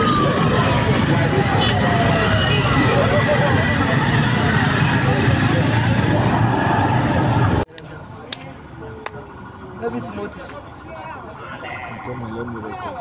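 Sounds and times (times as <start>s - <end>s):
crowd voices: 0.0s - 13.0s
motorcycle engines running: 0.0s - 13.0s
quiet street sound: 0.0s - 13.0s.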